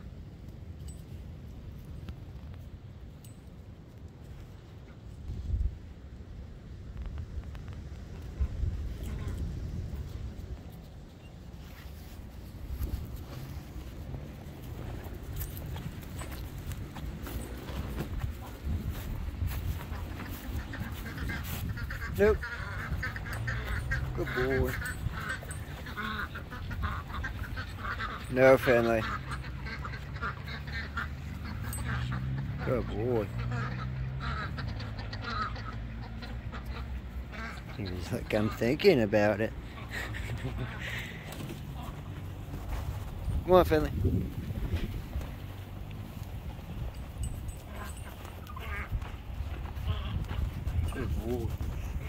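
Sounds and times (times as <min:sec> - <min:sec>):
wind rumble on microphone: 0:04.9 - 0:28.2, 0:40.0 - 0:52.0
ducks quacking: 0:08.3 - 0:10.0, 0:12.8 - 0:43.9, 0:46.1 - 0:52.0.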